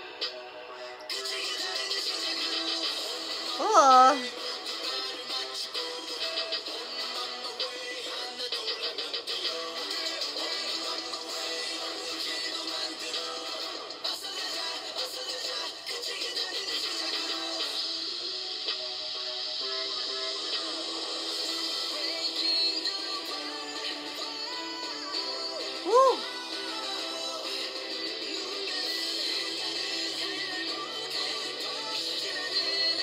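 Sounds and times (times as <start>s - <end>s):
pop song with male group vocals: 0.0s - 33.0s.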